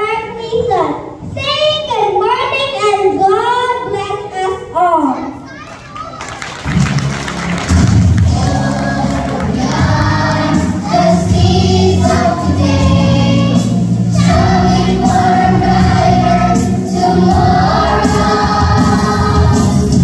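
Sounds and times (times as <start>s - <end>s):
child speaking into a microphone: 0.0s - 6.4s
music with steady bass: 6.7s - 20.0s
young children singing: 8.2s - 20.0s.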